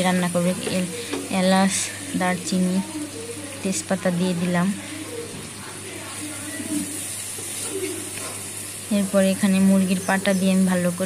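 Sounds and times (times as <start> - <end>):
masala sizzling in a frying pan: 0.0 - 11.0.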